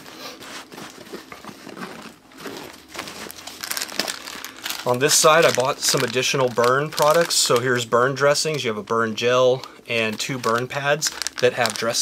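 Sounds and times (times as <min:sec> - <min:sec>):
plastic packaging crinkling: 0:00.7 - 0:12.0
fabric bag rustling: 0:02.0 - 0:07.6, 0:10.3 - 0:12.0.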